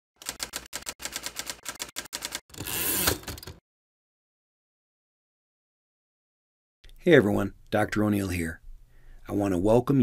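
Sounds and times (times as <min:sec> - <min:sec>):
typewriter keys clacking: 0:00.2 - 0:03.6.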